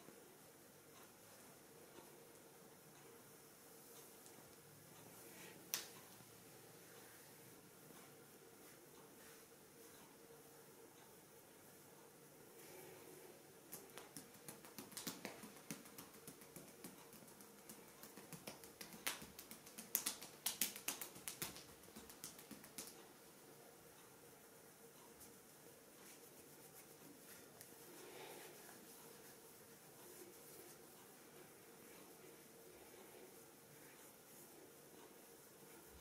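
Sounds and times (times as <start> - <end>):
hands rubbing skin: 13.7 - 23.0, 26.0 - 31.2.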